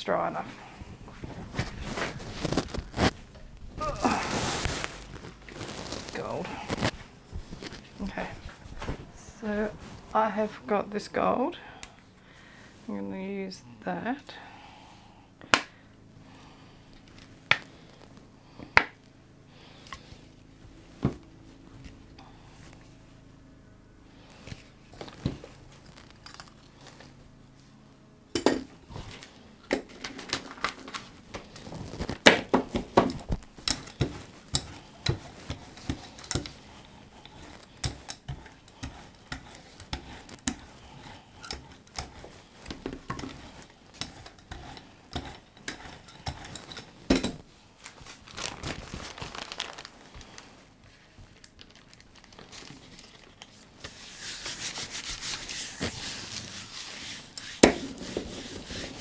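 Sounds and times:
brayer rolling through tacky paint: 1.1 - 10.5, 52.4 - 59.0
paper rubbed by hand: 3.9 - 7.0, 53.6 - 59.0.

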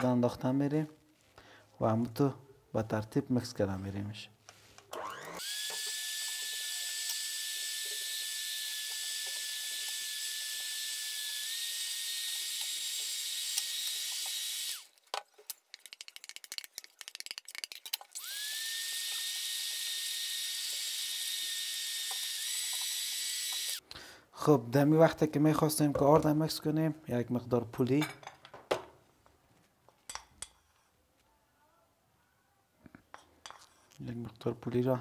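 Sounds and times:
electric hand mixer whining: 4.9 - 14.9, 18.1 - 23.8.

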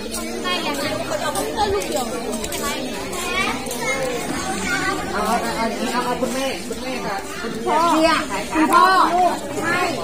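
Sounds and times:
adults and children chattering: 0.0 - 10.0.

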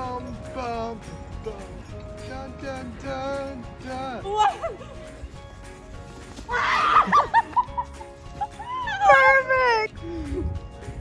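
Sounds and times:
girl's excited squeal: 6.5 - 7.2.

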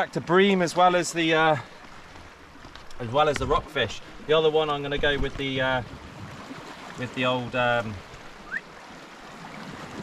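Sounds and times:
sea washing against rocks: 0.5 - 10.0.

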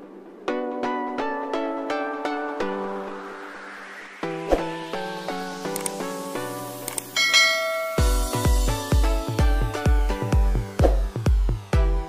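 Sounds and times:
plucked-string background music: 4.2 - 12.0
notification bell chime: 7.2 - 8.2.

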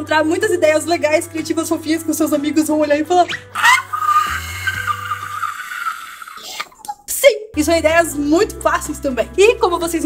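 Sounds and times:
background music: 0.0 - 10.0
woman squealing with delight: 3.6 - 6.7.

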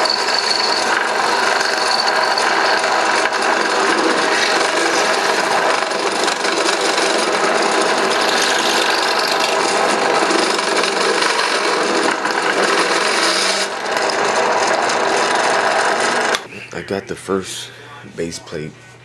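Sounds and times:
drill press grinding through metal: 0.0 - 16.5.

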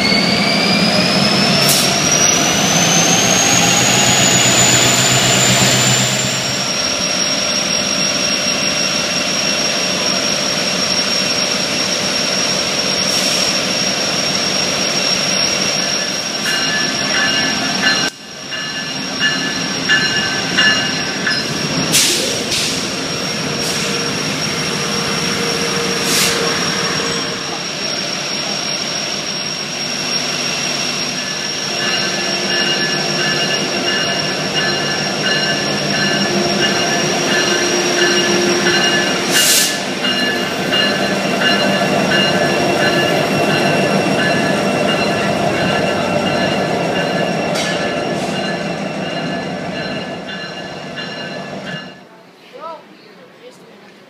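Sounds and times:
wheel squeal: 0.0 - 51.9
train cars rumbling past: 0.0 - 54.0.

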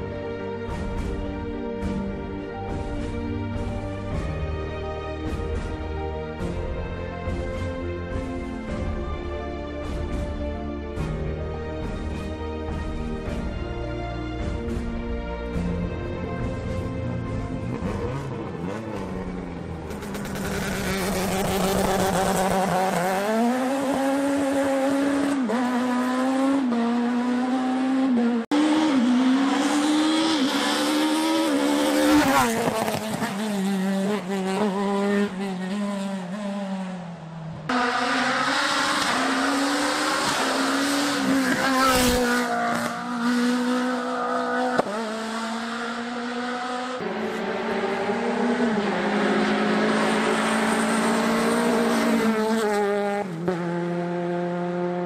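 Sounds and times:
rally car engines revving: 16.3 - 55.0.

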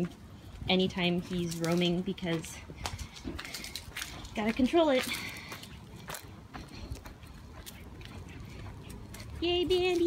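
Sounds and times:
footsteps on dirt and dry leaves: 0.0 - 10.0.

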